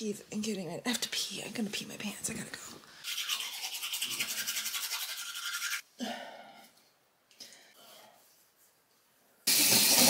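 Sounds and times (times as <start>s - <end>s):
toothbrush scrubbing teeth: 3.0s - 5.8s.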